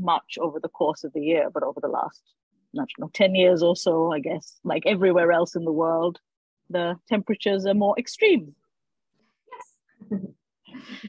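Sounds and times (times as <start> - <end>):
woman laughing: 10.0 - 11.0.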